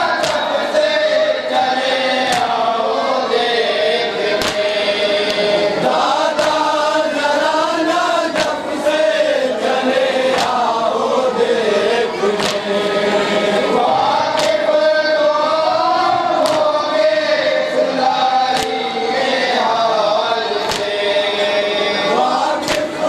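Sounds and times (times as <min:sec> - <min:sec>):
men chanting a lament in unison: 0:00.0 - 0:23.0.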